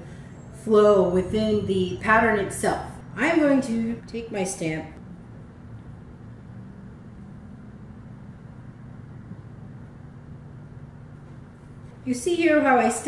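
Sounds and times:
low hum with faint hiss: 0:00.0 - 0:13.0.

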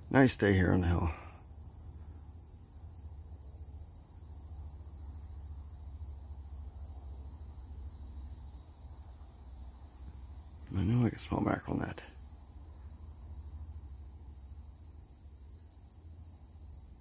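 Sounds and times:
faint low rumble: 0:00.0 - 0:17.0
insects chirring: 0:00.0 - 0:17.0.

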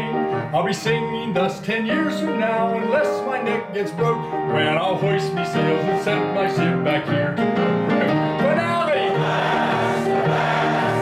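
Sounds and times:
keyboard accompaniment: 0:00.0 - 0:11.0
audience singing: 0:09.0 - 0:11.0.

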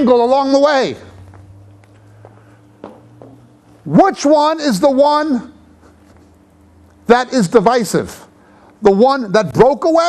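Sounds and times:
steady low hum: 0:00.0 - 0:10.0
faint footsteps on stage floor: 0:01.1 - 0:03.8.

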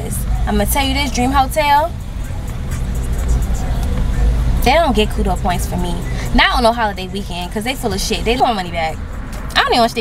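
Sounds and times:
car engine rumble: 0:00.0 - 0:10.0
faint music: 0:00.0 - 0:10.0.

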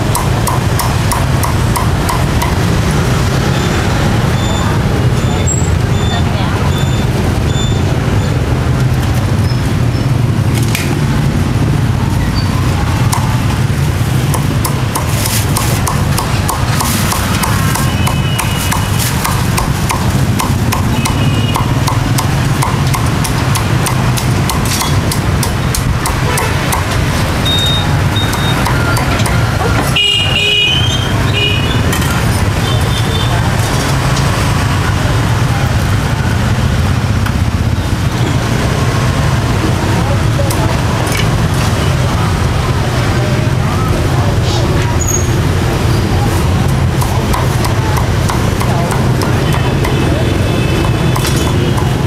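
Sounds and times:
cleaver chopping on wooden block: 0:14.4 - 0:27.0.

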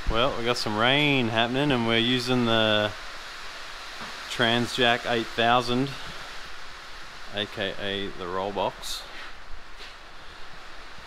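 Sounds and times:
rain on a metal roof: 0:00.0 - 0:11.0.

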